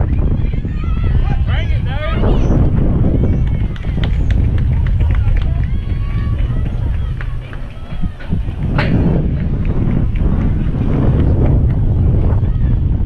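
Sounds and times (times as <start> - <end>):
faint distant voices: 0.0 - 13.0
wind buffeting microphone: 0.0 - 13.0.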